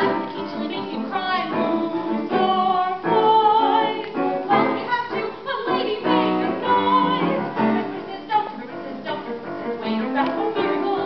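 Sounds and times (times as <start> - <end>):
piano accompaniment: 0.0 - 11.0
woman singing with vibrato: 0.0 - 11.0.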